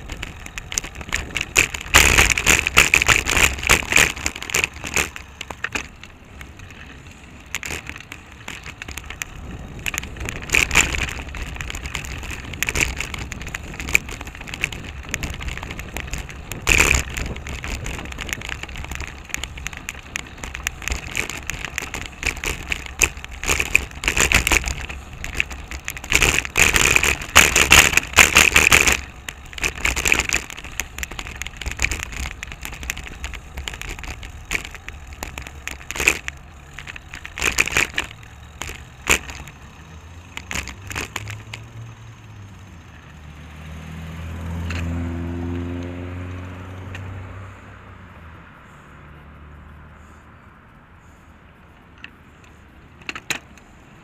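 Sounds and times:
bicycle rattling and clicking: 0.0s - 47.3s, 51.0s - 54.0s
vehicle engine passing by: 39.7s - 51.2s.

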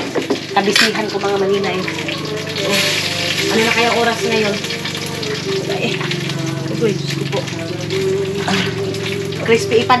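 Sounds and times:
oil sizzling in a pan: 0.0s - 10.0s.

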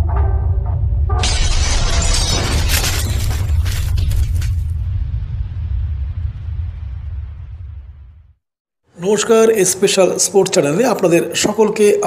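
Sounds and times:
deep rumble: 0.0s - 8.4s
glass shattering crash: 1.2s - 4.9s.

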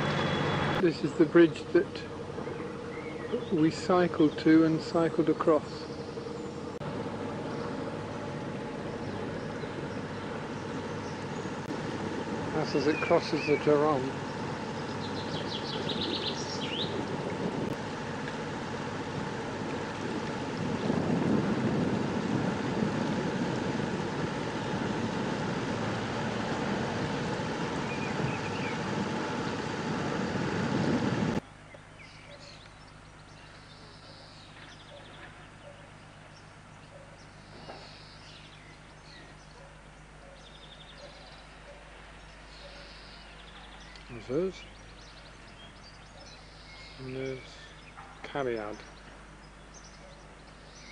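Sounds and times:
birds chirping: 0.0s - 50.9s
boat engine droning: 0.0s - 50.9s.

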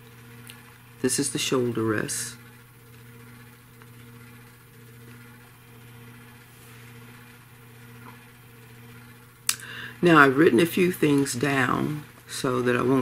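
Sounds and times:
low hum: 0.0s - 13.0s.

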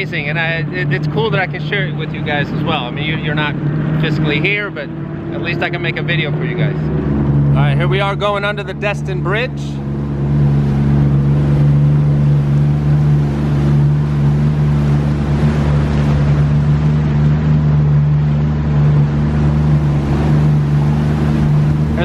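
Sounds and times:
jet ski engine running: 0.0s - 22.0s
wind: 0.0s - 22.0s.

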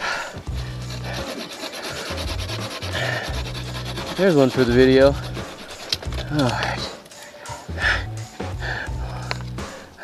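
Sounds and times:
hand saw cutting wood: 0.4s - 6.7s.

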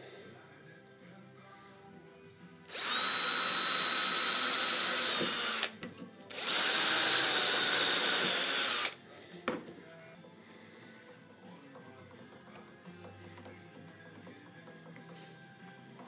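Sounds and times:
power drill boring into wood: 2.7s - 9.0s.

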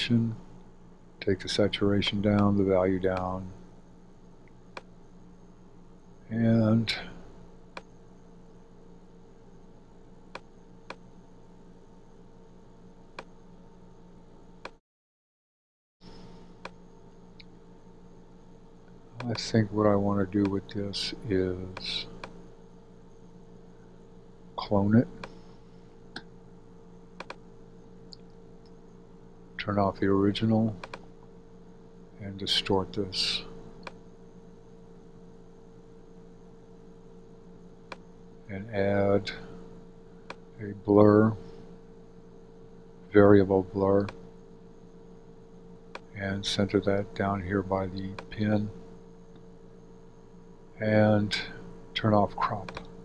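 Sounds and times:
low hiss: 0.0s - 13.6s, 16.1s - 53.0s
light electrical hum: 0.0s - 14.8s, 16.0s - 53.0s.

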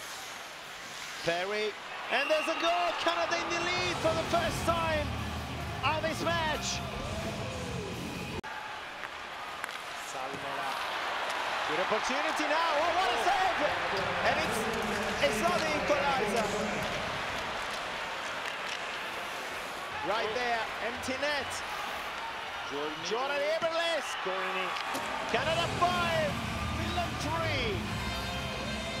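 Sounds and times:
arena crowd noise: 1.2s - 29.0s
bass-heavy music: 3.9s - 8.4s, 25.4s - 29.0s.

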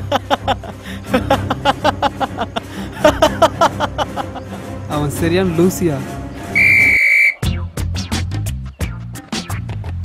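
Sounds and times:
loud high whistle tone: 6.6s - 7.4s.

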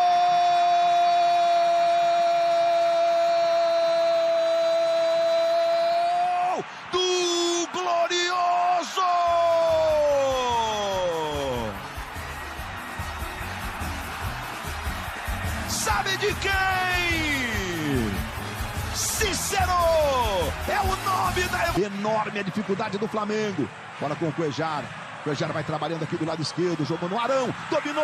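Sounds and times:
commentator's drawn-out goal cry: 15.7s - 18.2s, 18.9s - 22.6s.

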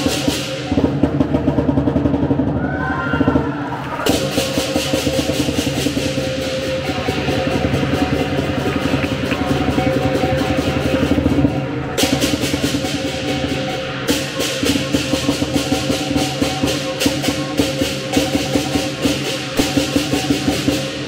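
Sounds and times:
crashing cymbals: 0.0s - 1.5s, 4.0s - 21.0s
fast drumming: 0.0s - 21.0s.

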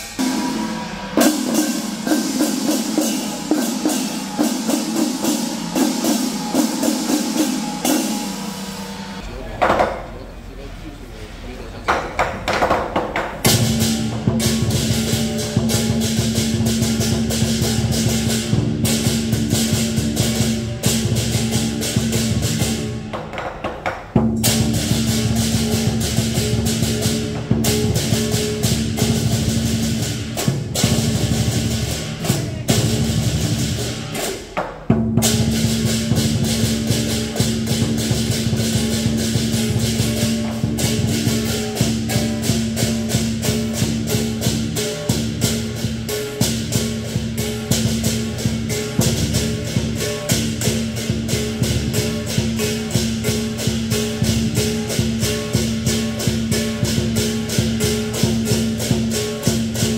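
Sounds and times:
gong: 0.0s - 9.6s, 13.4s - 23.2s, 24.2s - 59.9s
hand cymbals clashing: 0.0s - 10.1s, 12.1s - 59.9s
big drum beat: 0.0s - 10.2s, 11.9s - 59.9s.

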